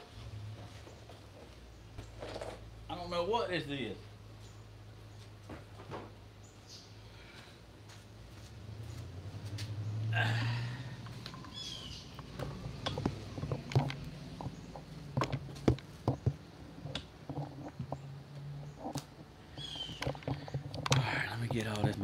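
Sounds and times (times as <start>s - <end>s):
phone handling clicks and knocks: 12.2s - 18.0s.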